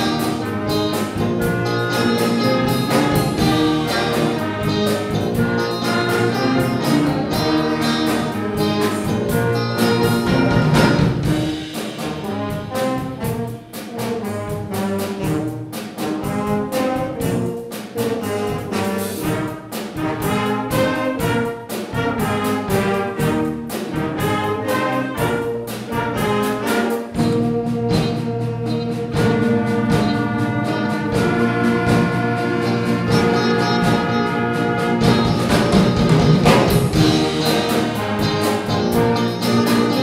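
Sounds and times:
concert band playing: 0:00.0 - 0:40.0
percussive drum beat: 0:00.0 - 0:40.0.

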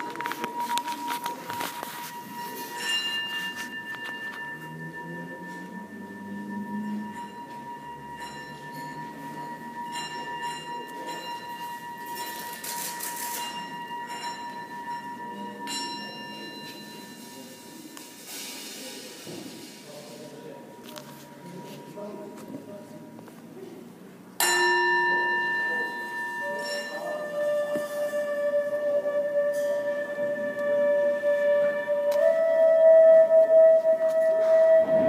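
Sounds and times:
bell-like tones: 0:00.0 - 0:18.4, 0:24.4 - 0:33.0
shimmering metallic washes: 0:00.0 - 0:21.6
steady high ringing tone: 0:00.0 - 0:23.1, 0:24.4 - 0:35.0
low tone gliding upward: 0:34.4 - 0:35.0.

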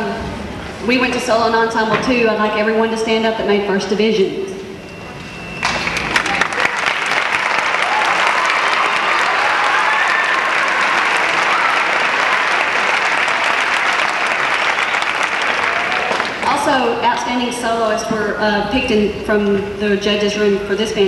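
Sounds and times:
audience applauding: 0:05.6 - 0:16.6.

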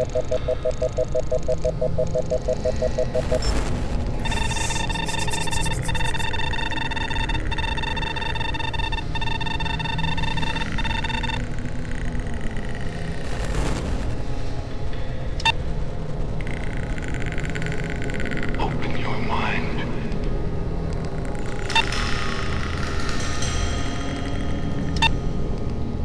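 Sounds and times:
deep rumbling drone: 0:00.0 - 0:18.7
high pitched electronic tone: 0:02.0 - 0:14.2.

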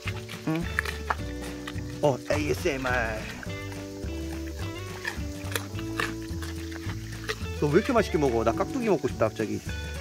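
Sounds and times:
pig crunching carrot: 0:00.0 - 0:09.3
background music: 0:00.0 - 0:10.0.

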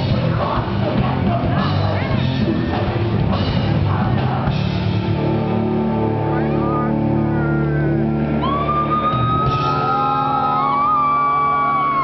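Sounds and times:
distorted guitars and bass droning: 0:00.0 - 0:12.0.

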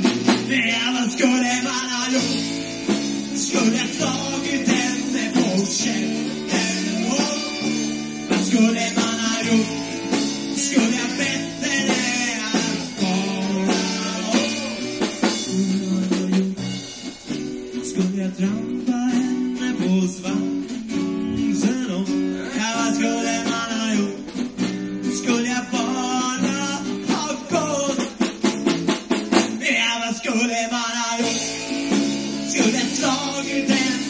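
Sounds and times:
live band playing: 0:00.0 - 0:29.9, 0:31.1 - 0:34.0
drum kit: 0:00.0 - 0:34.0.

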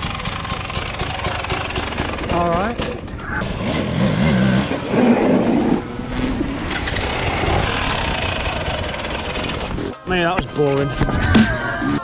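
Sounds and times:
dirt bike engine running: 0:00.0 - 0:12.0
outdoor background noise: 0:00.0 - 0:12.0.

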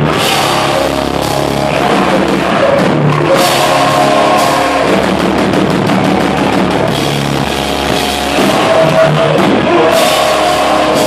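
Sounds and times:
bass guitar: 0:00.0 - 0:11.0
distorted electric guitars: 0:00.0 - 0:11.0
drum kit with crashing cymbals: 0:00.0 - 0:11.0.

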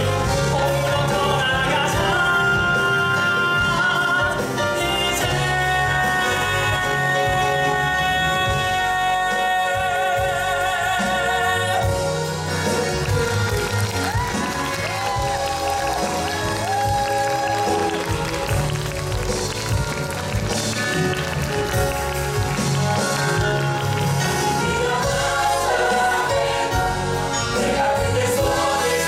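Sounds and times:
band accompaniment: 0:00.0 - 0:29.0
man singing long note with vibrato: 0:00.6 - 0:12.1.

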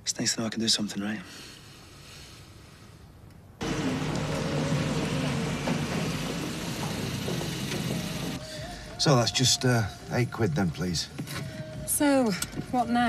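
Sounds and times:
car engine running loudly: 0:03.6 - 0:08.4.

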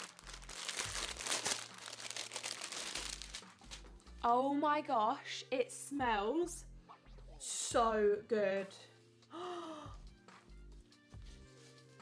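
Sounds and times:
plastic bag crinkling: 0:00.0 - 0:03.8.

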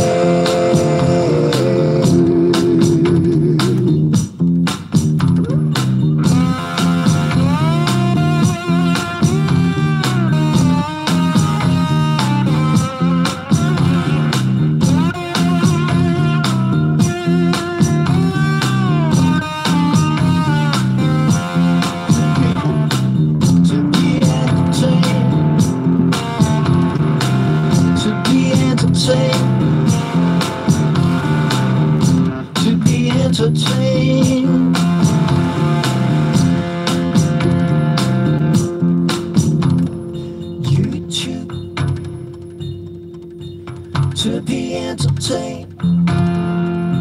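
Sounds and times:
blues electric guitar: 0:00.0 - 0:47.0
looped bass line: 0:00.0 - 0:47.0.

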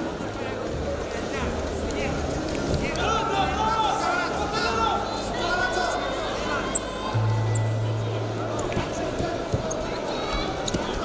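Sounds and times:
indistinct voices: 0:00.4 - 0:11.0.

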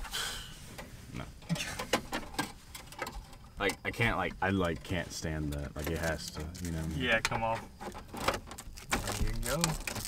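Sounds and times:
plastic rustle: 0:05.8 - 0:07.0, 0:07.8 - 0:10.0.

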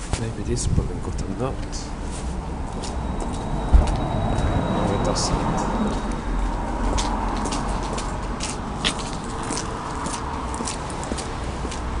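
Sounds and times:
elevator rumble: 0:01.9 - 0:09.9.

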